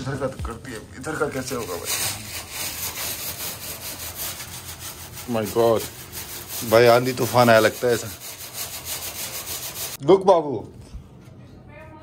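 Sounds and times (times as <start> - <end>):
broom scrubbing metal mesh: 1.3 - 10.0.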